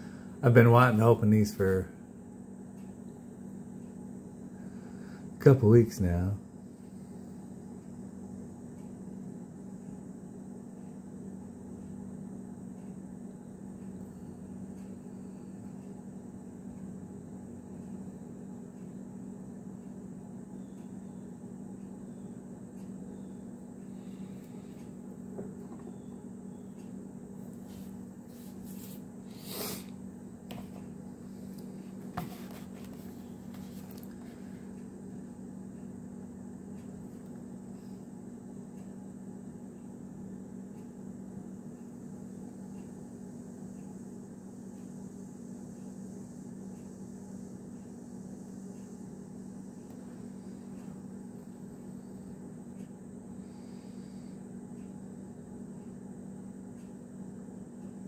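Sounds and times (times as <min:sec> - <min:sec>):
low background hum: 0:00.0 - 0:58.0.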